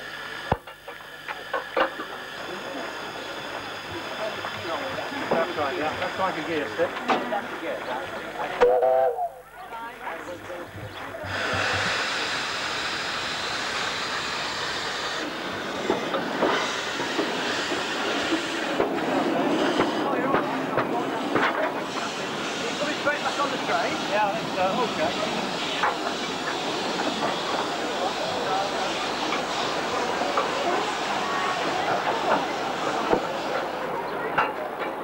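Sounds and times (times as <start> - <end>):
steam locomotive hissing steam: 0.0 - 35.0
voices: 0.9 - 35.0.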